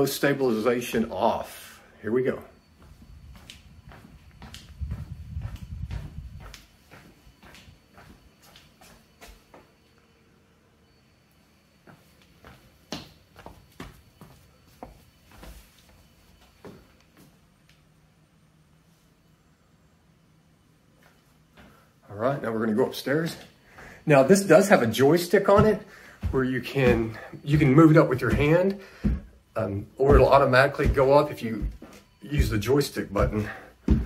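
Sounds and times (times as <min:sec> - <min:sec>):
footsteps on tiled floor: 0:02.7 - 0:09.9, 0:11.8 - 0:17.5, 0:23.2 - 0:34.0.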